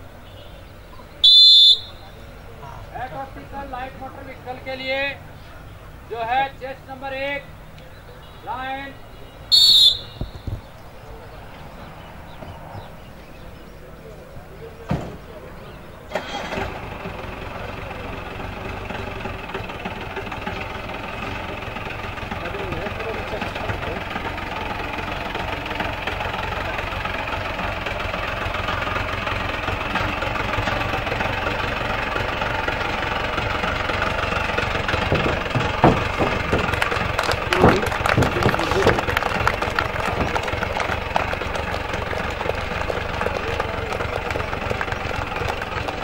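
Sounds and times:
car engine starting and running: 15.2s - 46.0s.

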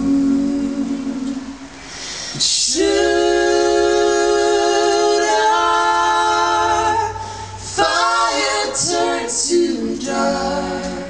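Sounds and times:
a cappella choir singing harmony: 0.0s - 11.0s.

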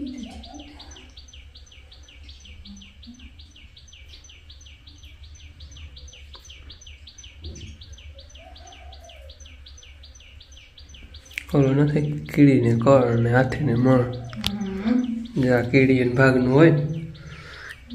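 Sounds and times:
low steady hum: 0.0s - 17.9s
small bird chirping: 0.0s - 17.9s.

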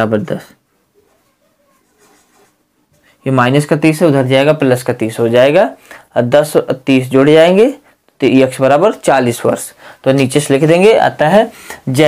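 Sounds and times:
marker pen scratching on whiteboard: 1.0s - 2.6s.

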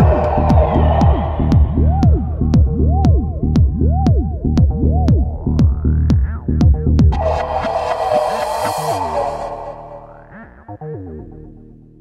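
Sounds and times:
bright synthesizer wash: 7.1s - 10.5s
sliding synth notes: 7.1s - 10.6s.

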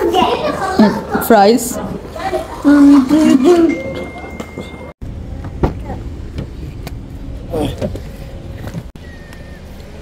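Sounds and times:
faint steady high tone: 3.6s - 4.9s.

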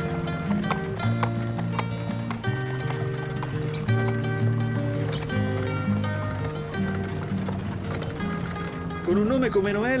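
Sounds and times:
background music with sustained notes: 0.0s - 10.0s
horse hooves clip-clopping on pavement: 0.0s - 10.0s.

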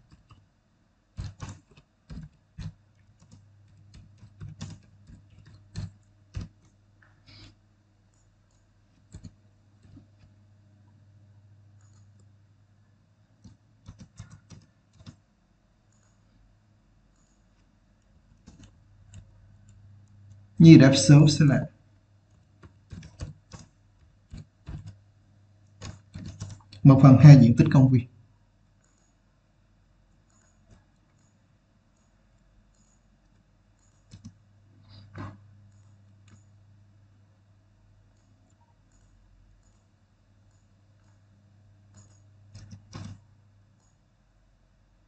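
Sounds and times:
computer keyboard typing: 0.0s - 0.5s, 1.1s - 10.4s, 11.7s - 12.4s, 13.4s - 16.3s, 17.1s - 25.0s, 25.6s - 27.8s, 30.1s - 36.6s, 38.0s - 41.3s, 41.9s - 44.1s.

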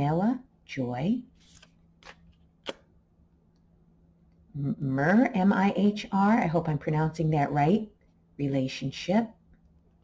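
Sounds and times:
cards sliding: 1.4s - 2.9s
card snapping: 1.5s - 2.9s.

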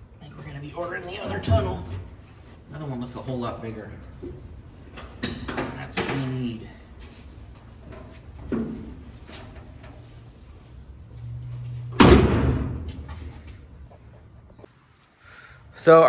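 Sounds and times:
loud car door slam: 12.0s - 12.9s.

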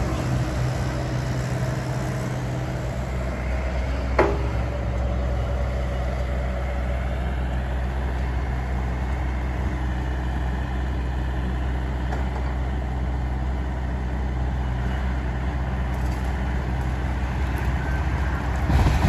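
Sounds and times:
excavator diesel engine running: 0.0s - 19.0s.

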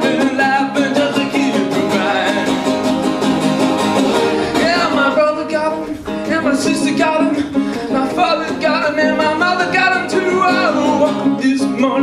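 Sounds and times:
man singing: 0.0s - 3.4s, 4.3s - 12.0s
acoustic guitar strumming: 0.0s - 12.0s.

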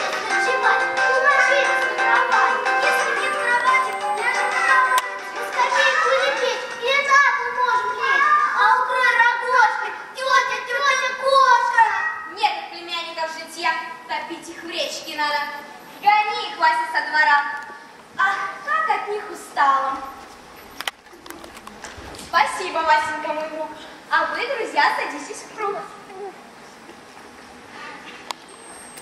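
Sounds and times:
children speaking: 0.0s - 17.2s
reverberant room sound: 0.0s - 29.0s.

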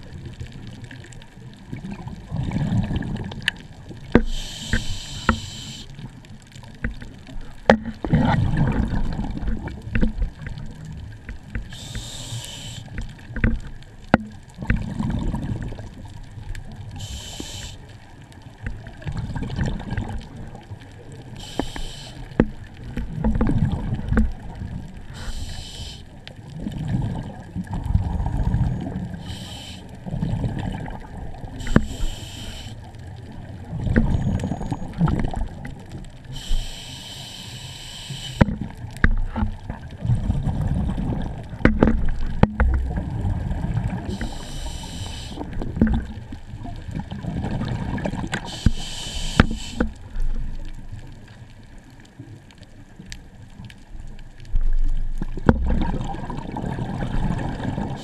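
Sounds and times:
low churning water rumble: 0.0s - 58.0s
exhaled bubbles hissing underwater: 1.8s - 6.2s, 8.0s - 13.3s, 16.7s - 18.0s, 18.9s - 50.7s, 55.4s - 58.0s.

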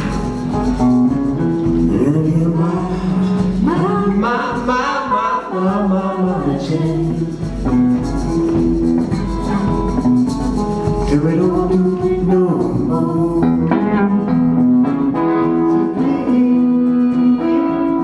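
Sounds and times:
electric guitar sliding notes: 0.0s - 18.0s.

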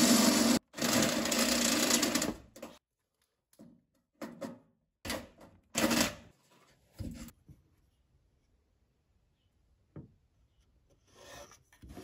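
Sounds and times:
cordless drill boring sheet metal: 0.0s - 2.4s.

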